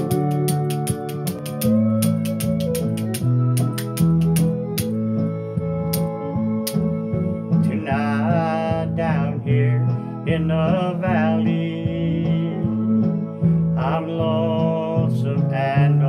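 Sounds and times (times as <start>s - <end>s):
ticking percussion: 0.0s - 5.0s
bass and guitar rhythm: 0.0s - 16.0s.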